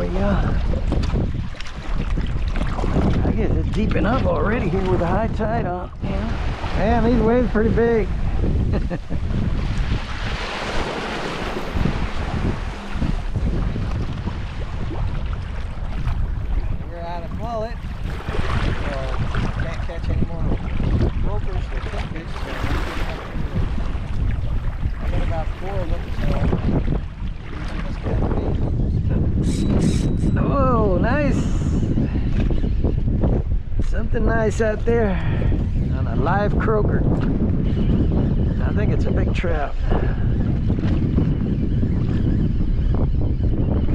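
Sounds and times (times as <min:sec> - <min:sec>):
waves splashing on kayak hull: 0:00.0 - 0:29.4
wind buffeting microphone: 0:00.0 - 0:43.9.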